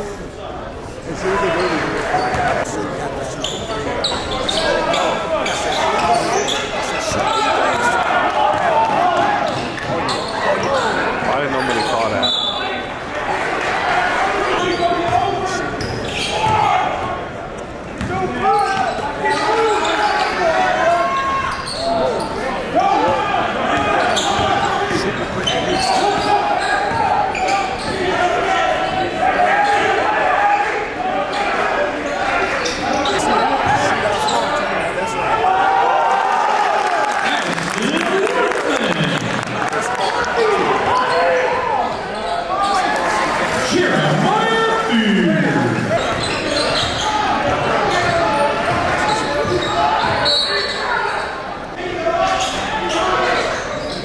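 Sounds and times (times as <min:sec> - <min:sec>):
crowd talking and shouting: 0:00.0 - 0:54.0.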